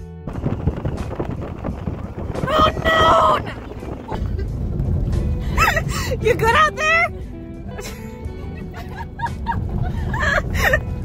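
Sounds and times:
guitar music: 0:00.0 - 0:05.6
car road noise: 0:00.0 - 0:11.0
wind buffeting microphone: 0:00.3 - 0:07.4.

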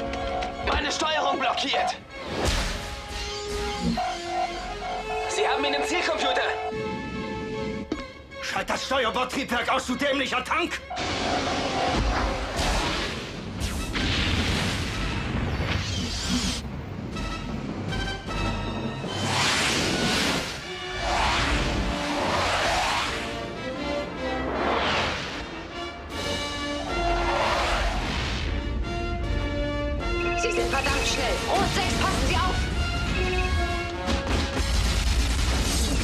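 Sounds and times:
film score music: 0:00.0 - 0:36.0
spacecraft whooshing past: 0:19.1 - 0:23.5.

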